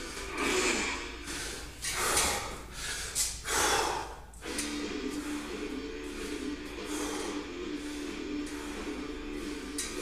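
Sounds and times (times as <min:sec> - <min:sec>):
man breathing hard: 0:00.0 - 0:10.0.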